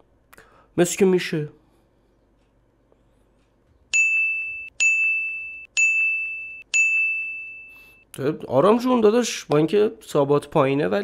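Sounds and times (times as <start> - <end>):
high bell-like dings: 3.9 - 8.0.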